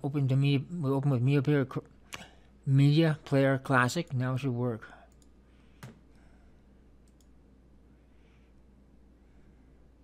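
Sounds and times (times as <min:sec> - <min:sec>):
low electrical hum: 0:00.0 - 0:10.0
computer mouse click: 0:07.0 - 0:07.4.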